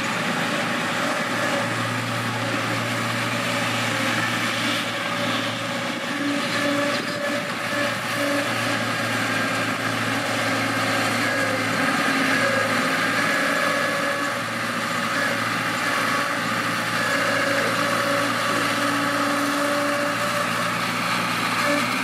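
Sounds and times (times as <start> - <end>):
bulldozer diesel engine running: 0.0 - 22.0.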